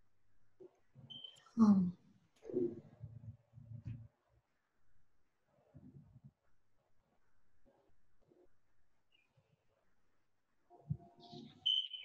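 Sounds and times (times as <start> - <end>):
short high-pitched beep: 11.6 - 12.0.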